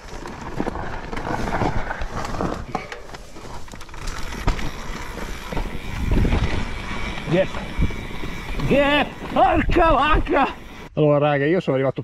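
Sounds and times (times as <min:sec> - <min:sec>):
bike knocking and rattling: 0:00.0 - 0:10.9
bike tyres crunching over rock: 0:00.0 - 0:10.9
wind rumble on microphone: 0:05.7 - 0:06.9.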